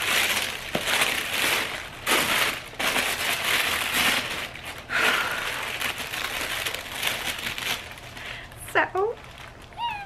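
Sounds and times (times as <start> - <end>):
tissue paper rustling: 0.0 - 10.0.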